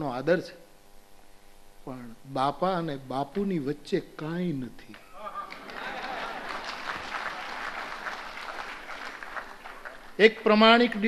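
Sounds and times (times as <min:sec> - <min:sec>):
audience applauding: 0:05.0 - 0:10.5.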